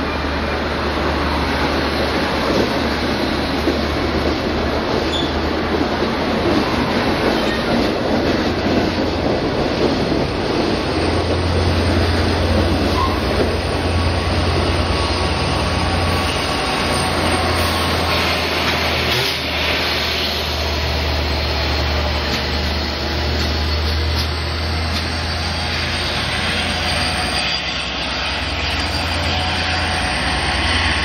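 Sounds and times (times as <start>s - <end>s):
train passing at speed: 0.0s - 31.0s.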